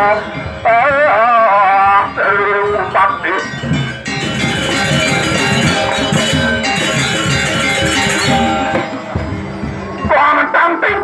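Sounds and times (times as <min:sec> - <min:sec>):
gamelan ensemble playing: 0:03.3 - 0:10.2.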